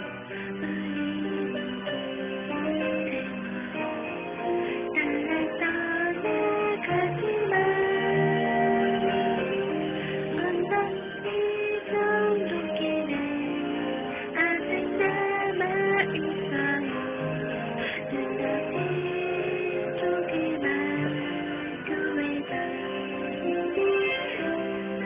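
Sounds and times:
karaoke backing track with guitar: 0.0s - 25.0s
woman singing a slow ballad: 0.3s - 3.8s, 4.9s - 9.6s, 10.2s - 17.3s, 17.9s - 24.7s.

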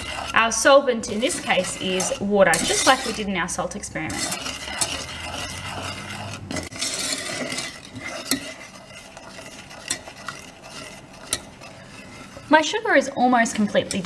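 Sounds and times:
spoon stirring in metal saucepan: 0.0s - 14.0s.

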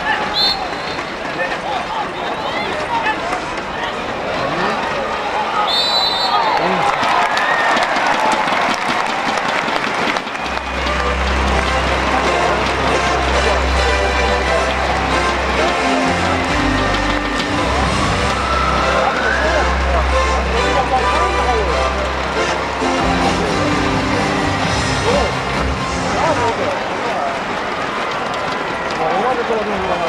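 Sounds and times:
crowd shouting and cheering: 0.0s - 30.0s
background music with bass line: 10.6s - 26.7s.

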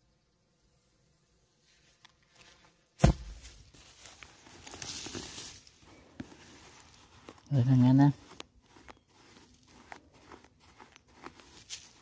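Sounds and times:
sharp thump: 3.0s - 3.5s
hand scraping sand: 3.8s - 12.0s.

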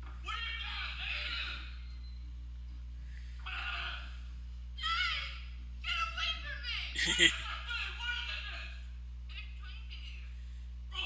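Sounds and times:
steady low hum: 0.0s - 11.0s
person squealing: 7.0s - 7.4s.

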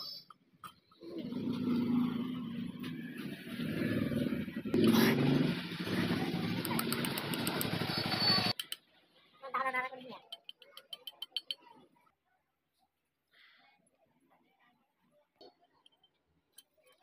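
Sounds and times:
motor vehicle engine running: 1.3s - 8.5s.

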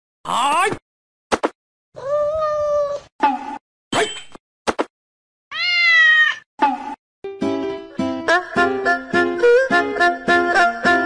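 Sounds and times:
cat meowing: 5.5s - 6.4s.

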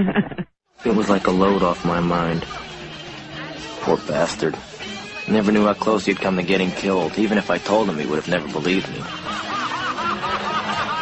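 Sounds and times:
person laughing: 0.0s - 0.5s
soft background music: 0.8s - 11.0s.

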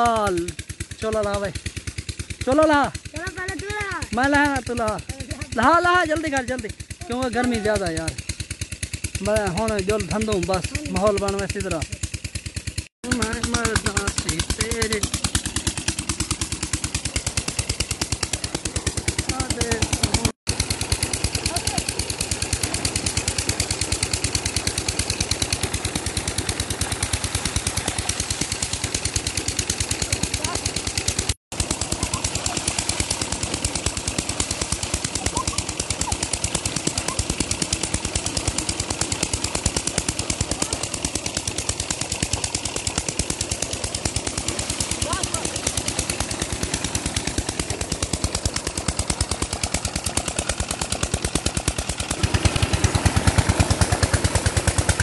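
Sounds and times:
diesel engine chugging: 0.0s - 55.0s
water gushing into pool: 13.2s - 55.0s.

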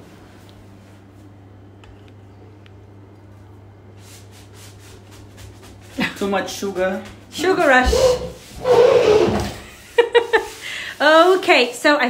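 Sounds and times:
low steady hum: 0.0s - 11.3s
soft rubbing noise: 3.9s - 11.8s.

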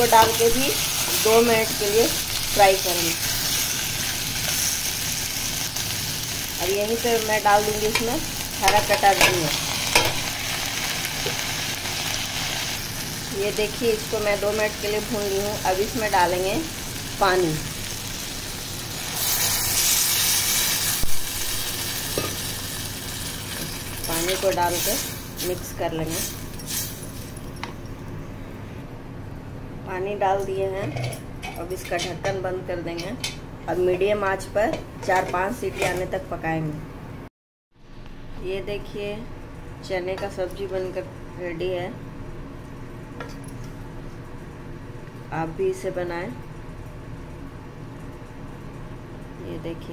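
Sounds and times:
water sizzling in hot pan: 0.0s - 27.4s.

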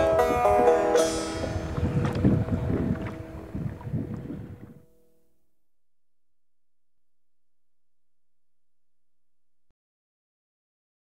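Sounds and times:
wind buffeting microphone: 0.0s - 4.9s.

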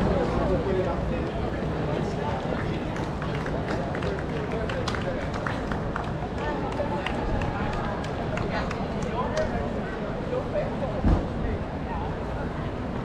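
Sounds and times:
spectators' voices: 0.0s - 13.0s.

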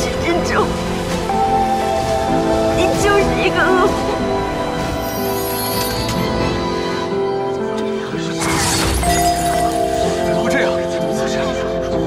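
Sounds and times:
dramatic music: 0.0s - 12.0s
glass shattering effect: 8.4s - 10.5s.

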